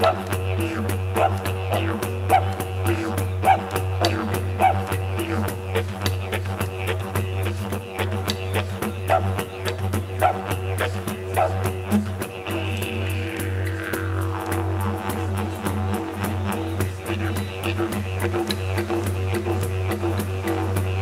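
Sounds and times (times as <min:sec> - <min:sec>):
didgeridoo drone: 0:00.0 - 0:21.0.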